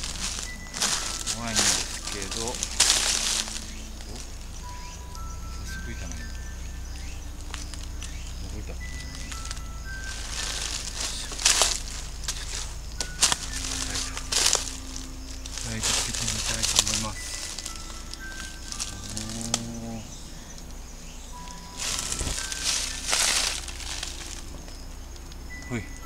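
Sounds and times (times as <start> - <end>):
faint sparse melody: 0.0 - 26.0
footsteps crunching dry leaves: 0.0 - 26.0.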